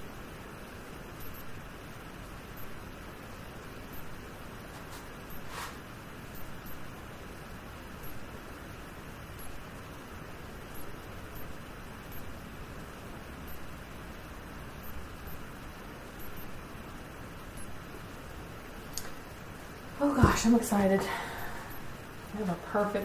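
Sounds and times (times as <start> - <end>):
room noise hiss: 0.0 - 23.0.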